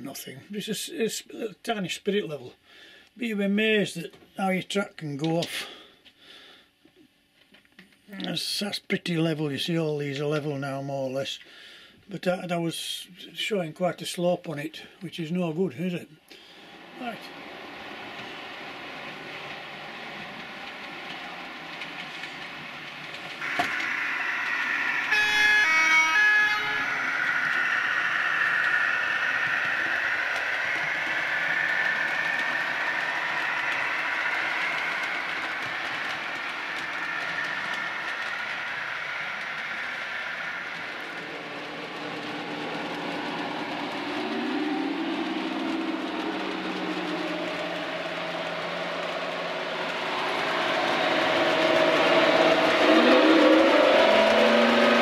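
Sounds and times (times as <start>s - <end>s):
recorded diesel engine sound: 16.5s - 55.0s
model locomotive horn blast: 23.4s - 28.3s.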